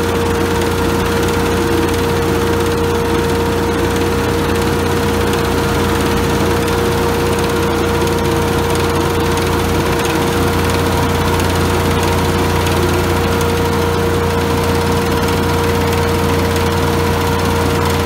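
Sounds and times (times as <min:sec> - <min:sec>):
hovercraft engine and fan droning: 0:00.0 - 0:18.0.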